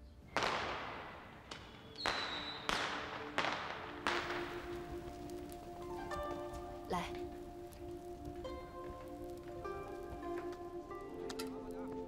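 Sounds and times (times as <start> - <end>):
sustained music notes: 0.0 - 12.0
high whistling tone: 1.5 - 6.5.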